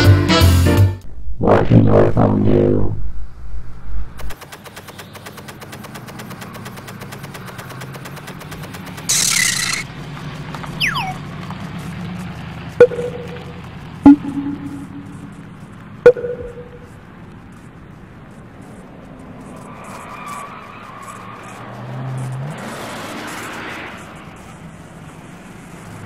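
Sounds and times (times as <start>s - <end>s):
loud whoosh: 1.0s - 4.3s
low steady hum: 1.0s - 4.3s, 12.8s - 16.9s
fast even ticking: 10.7s - 11.3s, 12.8s - 17.0s
falling whistle: 10.8s - 11.2s
musical sting: 14.1s - 15.4s.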